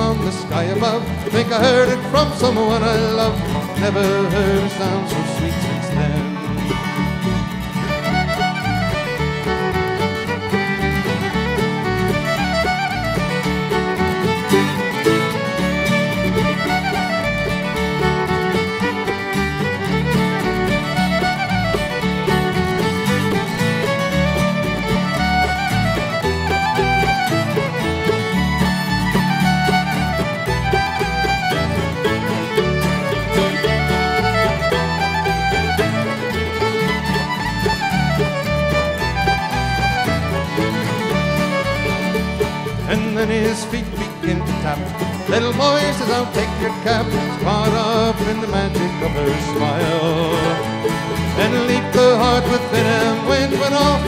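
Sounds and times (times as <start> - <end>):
banjo: 0.0 - 54.0
fiddle playing a reel: 0.0 - 54.0
guitar: 0.0 - 54.0.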